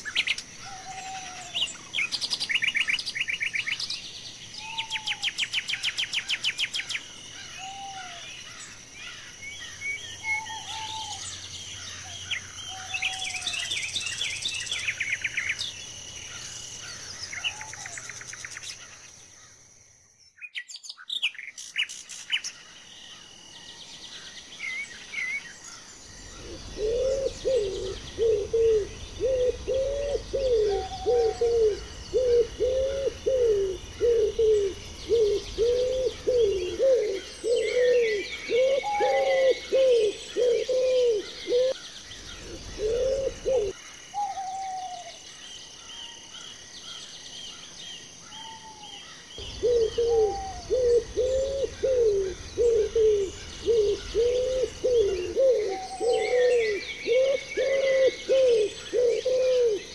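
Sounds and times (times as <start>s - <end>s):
high bird calls: 0.0s - 19.5s, 24.1s - 45.2s, 48.2s - 59.9s
small birds chirping: 0.0s - 59.9s
dove cooing: 26.4s - 45.1s, 49.4s - 59.9s.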